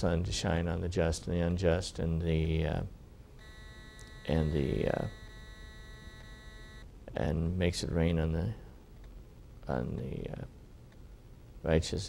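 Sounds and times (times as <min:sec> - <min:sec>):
faint electronic whine: 0:02.3 - 0:08.5.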